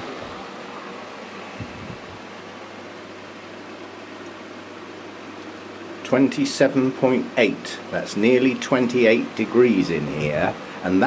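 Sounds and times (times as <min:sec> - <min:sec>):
fan rushing air: 0:00.0 - 0:11.0.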